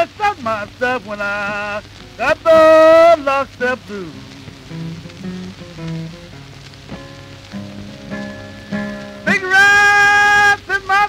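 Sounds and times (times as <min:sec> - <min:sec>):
person singing: 0:00.0 - 0:06.1, 0:07.6 - 0:11.0
acoustic guitar blues fill: 0:00.0 - 0:11.0
record surface hiss and crackle: 0:00.0 - 0:11.0.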